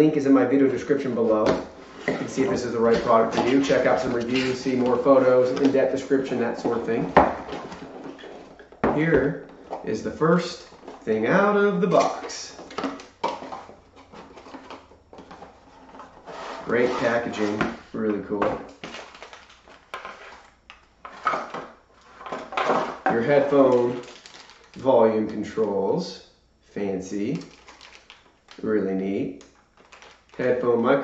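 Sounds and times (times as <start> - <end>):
cardboard and plastic rustling: 0.8 - 25.8, 27.4 - 28.6, 29.4 - 31.0.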